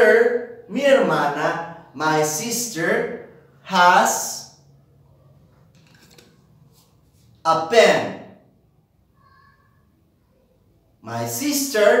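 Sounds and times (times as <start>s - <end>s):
pen handling clicks and rustling: 5.7s - 6.4s.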